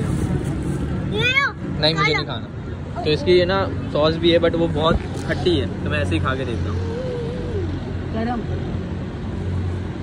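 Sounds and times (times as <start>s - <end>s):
low engine hum: 0.0s - 10.0s
street traffic noise: 0.0s - 10.0s.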